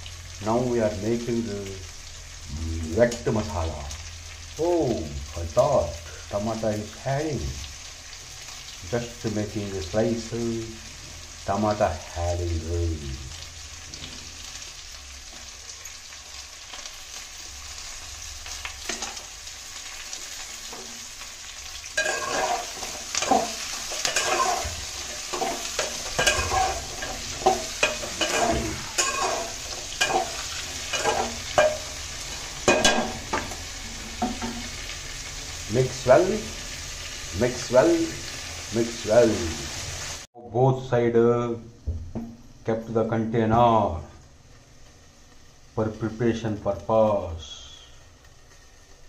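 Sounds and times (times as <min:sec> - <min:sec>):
food sizzling in hot oil: 0:00.0 - 0:40.4, 0:41.6 - 0:49.0
spatula scraping a pot: 0:22.0 - 0:32.0.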